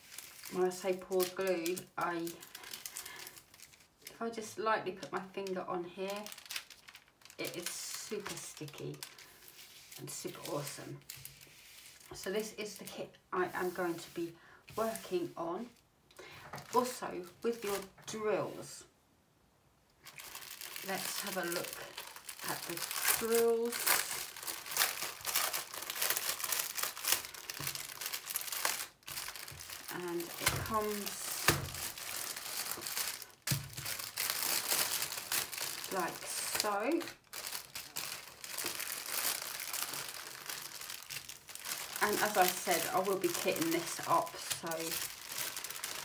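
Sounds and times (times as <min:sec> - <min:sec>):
plastic packaging crinkling: 0:00.0 - 0:12.9, 0:13.5 - 0:18.2, 0:20.0 - 0:46.0.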